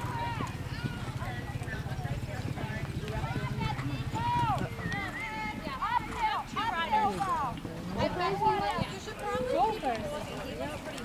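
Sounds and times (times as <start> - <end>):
horse hoofbeats on sand: 0.0 - 11.0
spectators chattering: 0.0 - 11.0.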